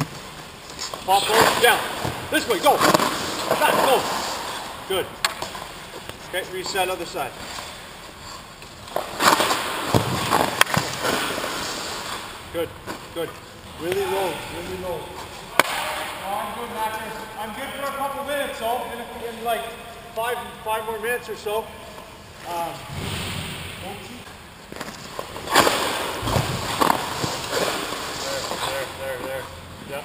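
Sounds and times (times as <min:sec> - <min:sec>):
skate blades scraping ice: 0:00.0 - 0:04.8, 0:07.3 - 0:12.4, 0:24.8 - 0:29.4.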